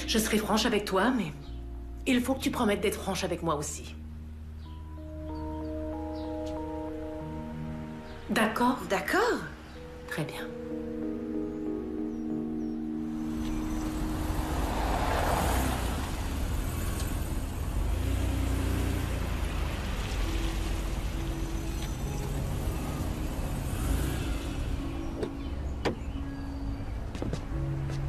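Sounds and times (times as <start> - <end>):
car engine rumble: 10.9 - 28.0
car door clicks: 25.2 - 26.1.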